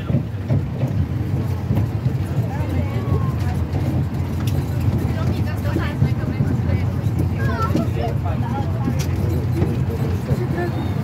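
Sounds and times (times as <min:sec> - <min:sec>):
faint voices: 0:00.0 - 0:11.0
steady low rumble: 0:00.0 - 0:11.0.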